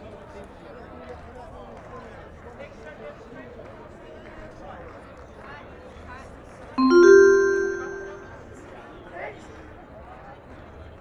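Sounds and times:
two-tone public-address chime: 6.8 - 8.6.

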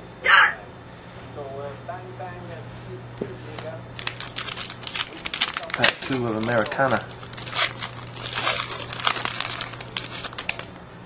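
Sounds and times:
foil wrapper crinkling: 4.0 - 10.8.

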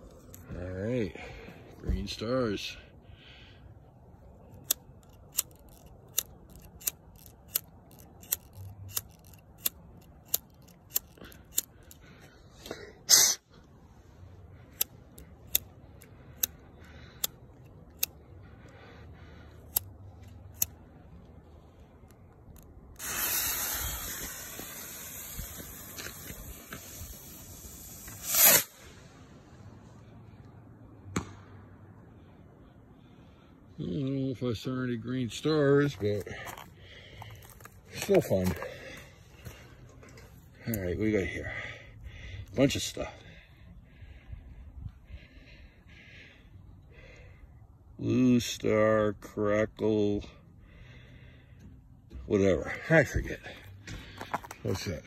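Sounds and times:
rocket motor hissing: 23.0 - 29.3.

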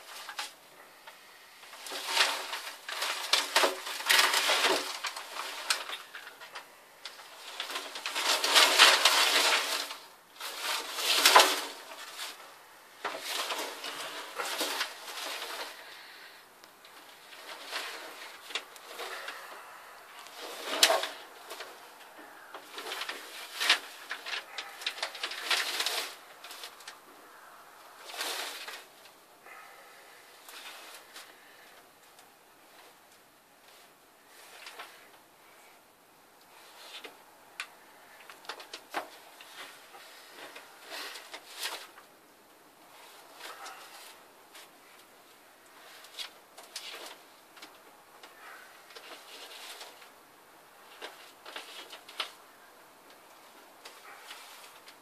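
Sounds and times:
newspaper crackling and rustling: 1.6 - 27.1, 28.0 - 31.9, 36.5 - 42.1, 42.9 - 55.0.

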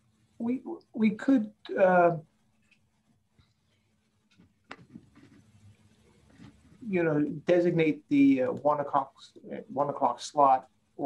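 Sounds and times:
faint low rustling: 0.0 - 10.5.

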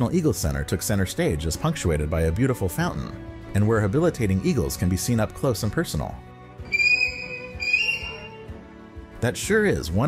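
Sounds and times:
eagle calling: 6.7 - 8.5.

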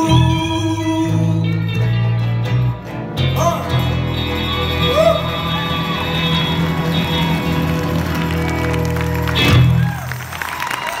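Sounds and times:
live band guitars ringing chord: 0.0 - 10.5
audience applause and cheering: 4.0 - 11.0.

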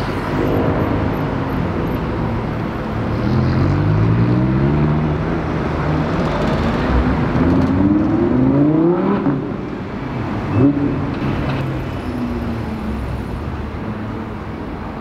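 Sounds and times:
street traffic: 0.0 - 15.0.

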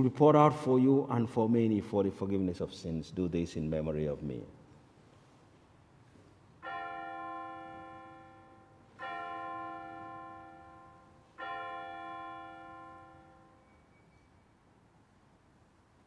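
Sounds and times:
altar bell ringing: 6.6 - 14.6.

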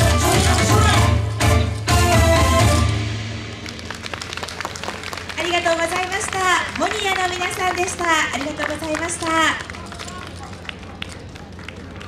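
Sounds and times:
dance music: 0.0 - 3.2
audience clapping: 3.5 - 12.0.

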